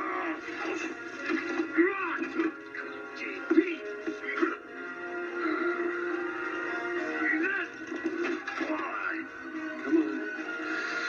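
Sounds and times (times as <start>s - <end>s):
trailer music from television: 0.0s - 11.0s.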